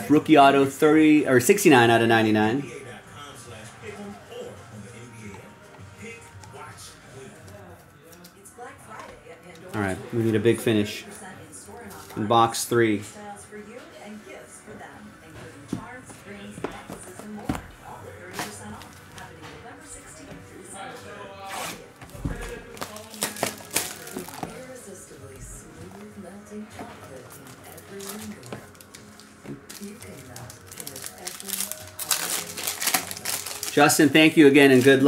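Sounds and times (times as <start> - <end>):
background music: 0.0 - 35.0
foil wrapper crinkling: 22.4 - 24.7, 27.1 - 35.0.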